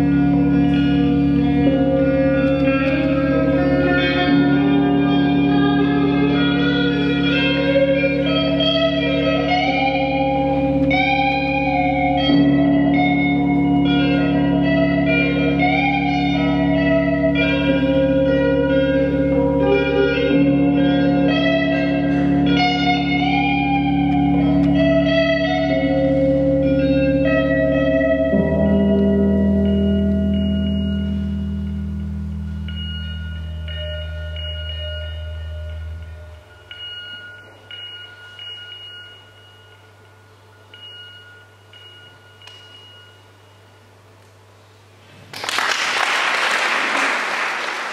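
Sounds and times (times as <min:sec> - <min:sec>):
ringing electric guitar notes: 0:00.0 - 0:43.9
steady low drone: 0:00.0 - 0:44.2.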